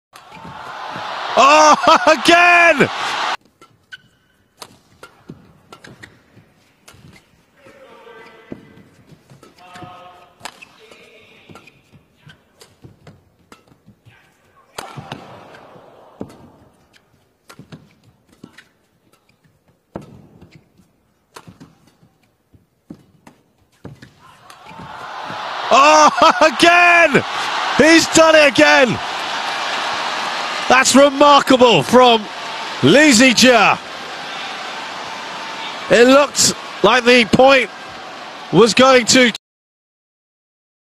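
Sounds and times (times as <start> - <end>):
rackets striking shuttlecock: 3.4 - 7.2, 8.8 - 14.0, 14.8 - 22.3, 22.9 - 24.9
brief pitched squeaks: 3.8 - 4.4.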